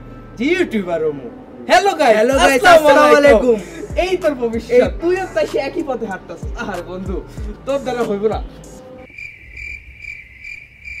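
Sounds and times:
crickets chirping: 9.0s - 11.0s.

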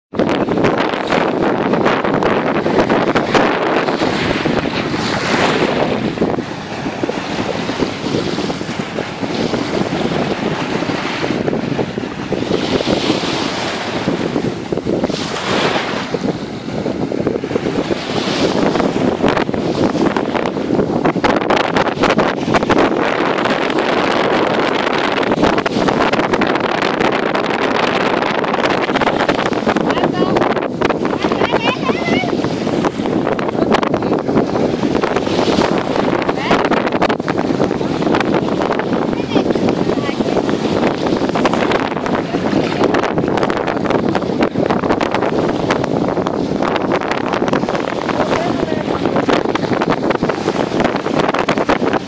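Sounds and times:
wind buffeting microphone: 0.1s - 52.0s
small waves washing ashore: 0.2s - 52.0s.

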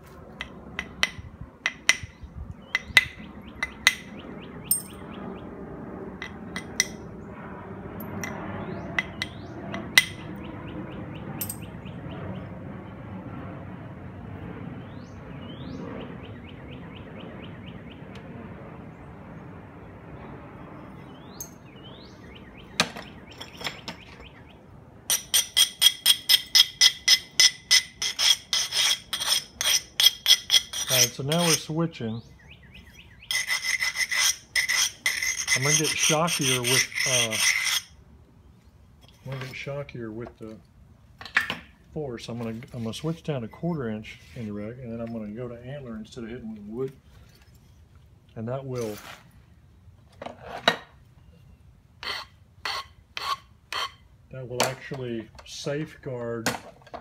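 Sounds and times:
stone scraping stone edge: 25.1s - 31.7s, 33.3s - 38.0s, 52.0s - 54.0s.

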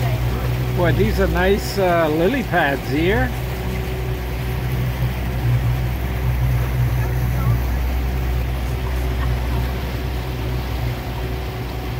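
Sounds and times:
motorboat engine droning: 0.0s - 11.9s
water noise: 0.0s - 11.9s.

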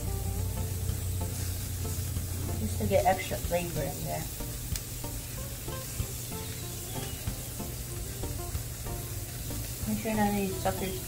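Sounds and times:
plucked background music: 0.0s - 11.0s
shrimp sizzling on a grill: 0.0s - 11.0s.

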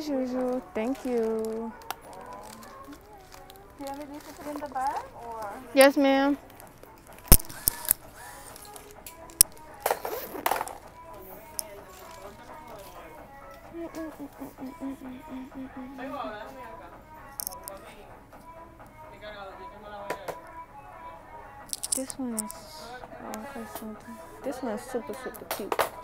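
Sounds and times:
background music with singing: 0.0s - 26.0s
faint voices: 0.0s - 26.0s
sharp clicks: 7.2s - 9.7s, 17.4s - 17.8s, 21.7s - 22.6s.

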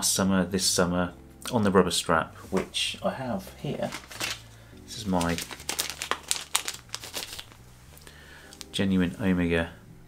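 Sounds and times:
plastic bag crinkling: 3.6s - 8.8s.

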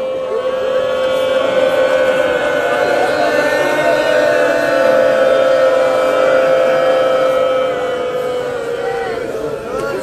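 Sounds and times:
voices singing long lament note: 0.0s - 10.0s.

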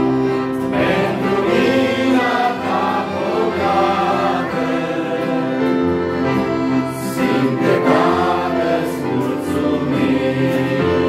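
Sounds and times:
acoustic guitar: 0.0s - 11.0s
group singing a hymn: 0.0s - 11.0s.

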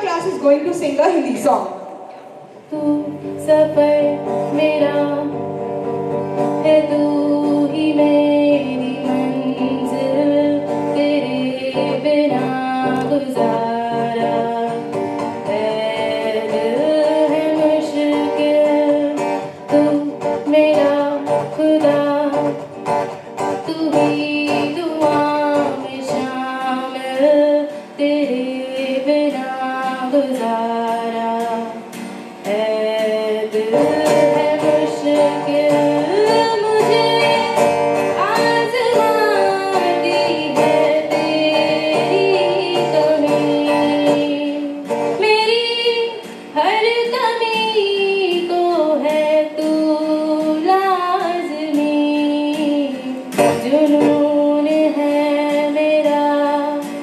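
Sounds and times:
acoustic guitar: 0.0s - 57.0s
woman singing into a microphone: 2.4s - 57.0s.

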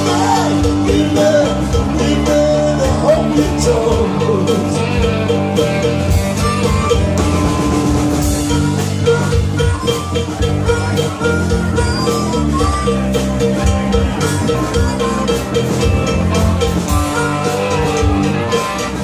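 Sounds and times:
amplified harmonica bending notes: 0.0s - 19.0s
rock band playing: 0.0s - 19.0s.

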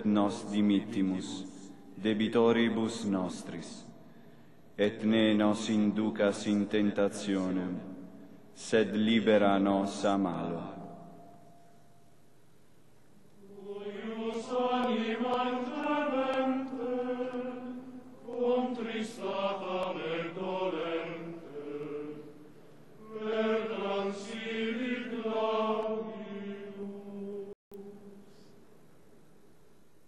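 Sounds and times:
male choir chanting: 13.4s - 22.4s, 23.0s - 27.6s.

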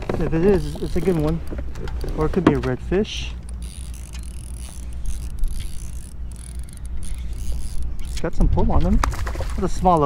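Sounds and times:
fishing reel winding: 0.5s - 2.3s, 2.9s - 8.4s.

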